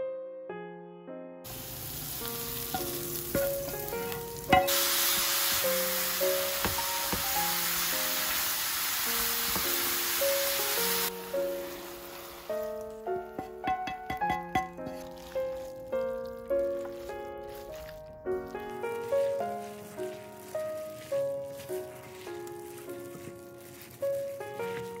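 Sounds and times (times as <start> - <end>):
gentle background music: 0.0 - 25.0
meat and mushrooms sizzling in pan: 1.5 - 25.0
wooden spatula stirring: 1.5 - 25.0.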